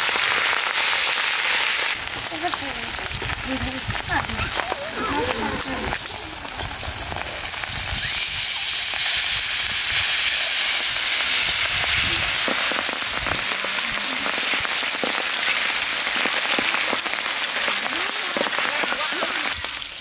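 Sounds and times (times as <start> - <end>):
fish frying in sizzling oil: 0.0 - 20.0.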